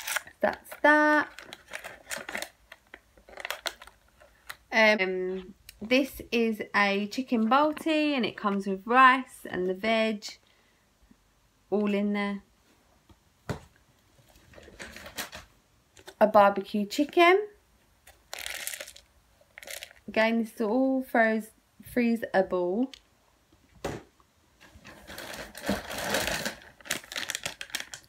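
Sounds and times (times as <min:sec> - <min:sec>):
plastic food packaging crackling: 0:00.0 - 0:04.8, 0:14.3 - 0:16.2, 0:18.0 - 0:20.1, 0:24.6 - 0:28.0.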